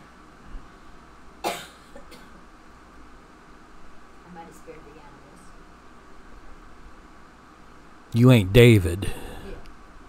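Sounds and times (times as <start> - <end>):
man coughing: 1.4 - 2.3.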